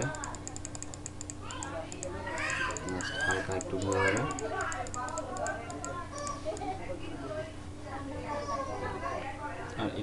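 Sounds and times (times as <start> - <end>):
person talking: 0.0 - 0.5
light rapid clicks: 0.0 - 6.0.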